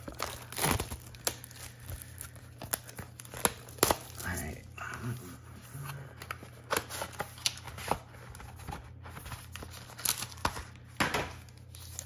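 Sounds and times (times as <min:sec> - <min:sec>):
foil pack crinkling and tearing: 0:00.0 - 0:04.6, 0:06.2 - 0:12.0
steady low hum: 0:00.0 - 0:09.9.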